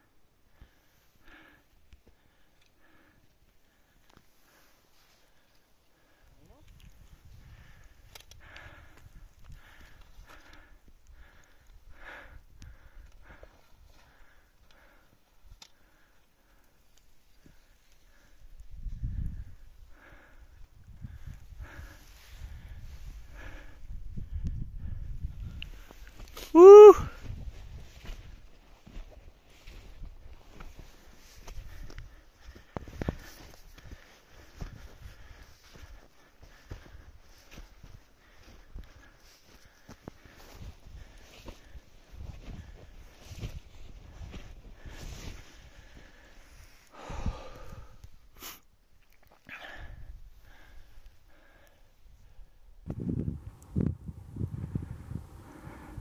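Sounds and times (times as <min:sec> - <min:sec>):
short loud voice call: 0:26.5 - 0:27.2
footsteps in deep snow: 0:27.2 - 0:46.8.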